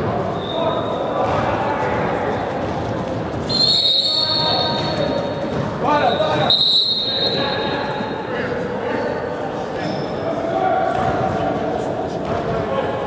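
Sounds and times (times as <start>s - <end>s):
referee's whistle blasts: 0.3s - 1.1s, 3.5s - 8.0s.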